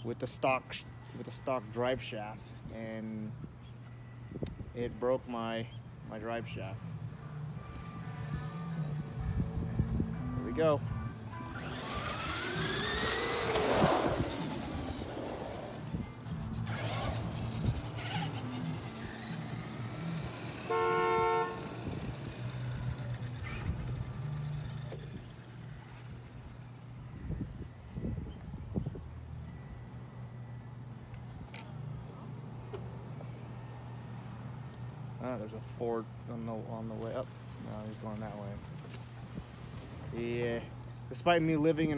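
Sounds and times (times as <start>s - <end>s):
rc truck motors whining: 10.4s - 29.9s, 33.0s - 35.1s
horn honk: 20.0s - 22.4s.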